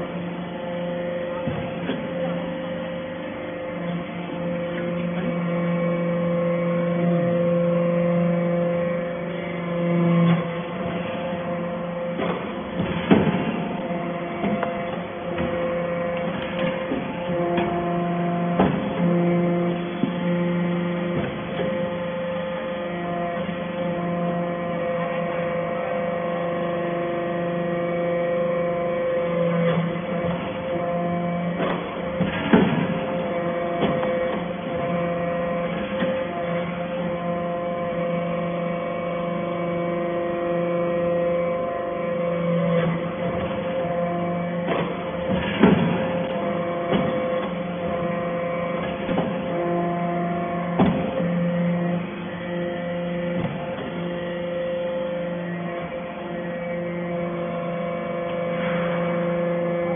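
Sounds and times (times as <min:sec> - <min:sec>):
hydraulic press motor hum: 0:00.0 - 0:59.9.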